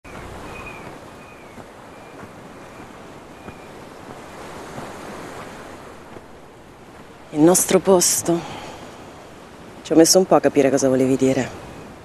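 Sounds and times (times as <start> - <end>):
wind: 0.0 - 12.0
surf washing onto beach: 0.1 - 12.0.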